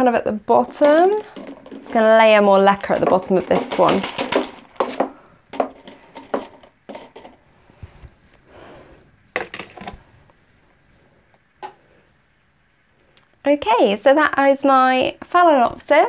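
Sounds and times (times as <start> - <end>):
pebbles clicking in plastic pot: 0.7 - 7.4.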